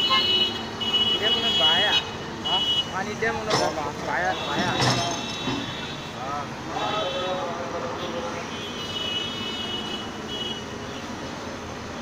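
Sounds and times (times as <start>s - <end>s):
excavator engine noise: 0.0s - 12.0s.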